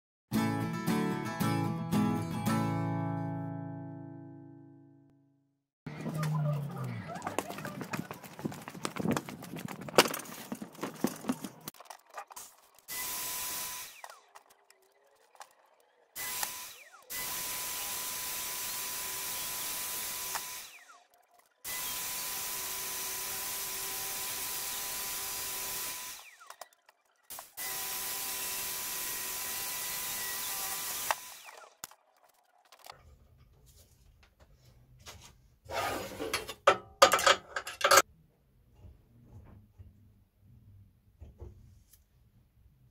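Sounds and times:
reciprocating saw cutting log: 12.8s - 14.6s, 16.2s - 26.7s, 27.3s - 31.9s.

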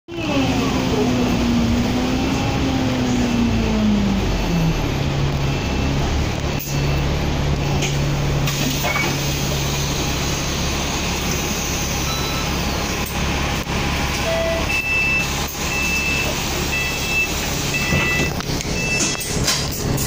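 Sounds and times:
bus engine idling: 0.1s - 20.0s
bus doors opening: 7.7s - 13.3s, 14.1s - 20.0s
door warning beeps: 12.0s - 12.6s, 14.2s - 19.4s.

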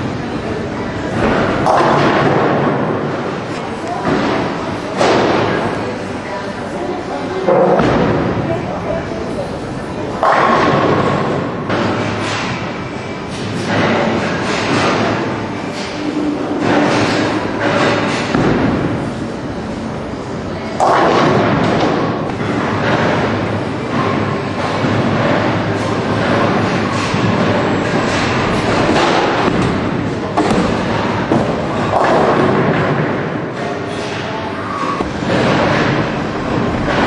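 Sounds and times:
bowling balls rolling and thudding: 0.0s - 6.1s, 20.6s - 37.0s.

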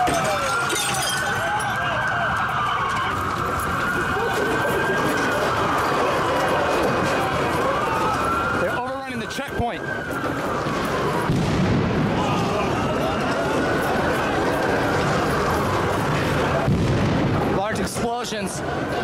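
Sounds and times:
emergency siren wailing: 0.0s - 19.0s
street and crowd noise: 0.0s - 19.0s.

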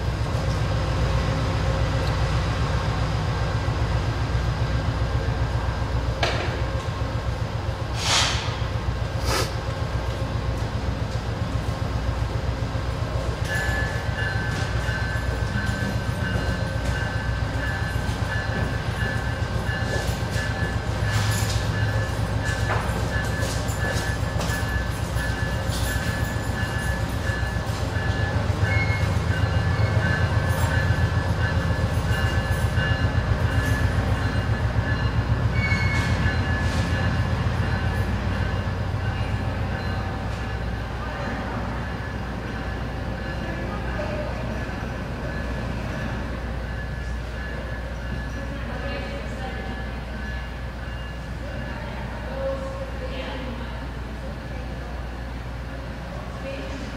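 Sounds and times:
train rumbling: 0.0s - 56.9s.

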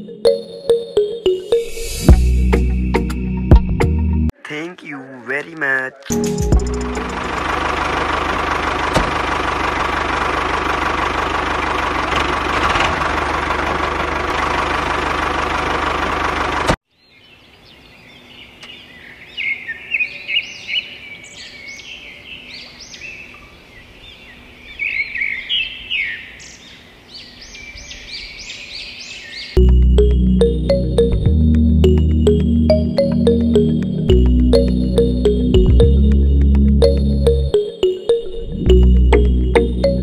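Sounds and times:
tractor engine running: 6.1s - 16.8s, 29.6s - 37.6s, 38.6s - 40.0s
birds chirping: 16.9s - 30.8s.

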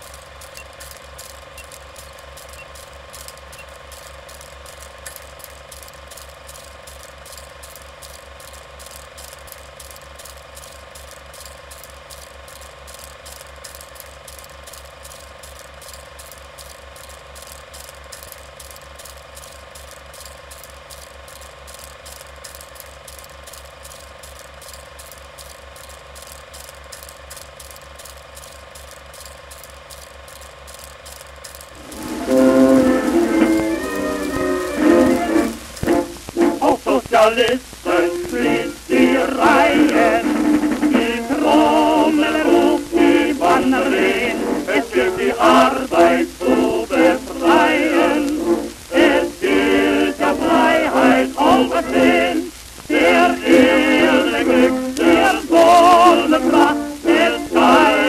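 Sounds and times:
mechanism clicking rhythmically: 0.0s - 58.0s.

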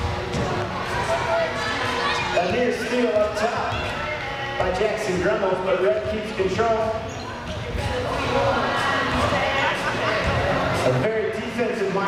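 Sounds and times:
spectators' voices echoing: 0.0s - 12.0s.

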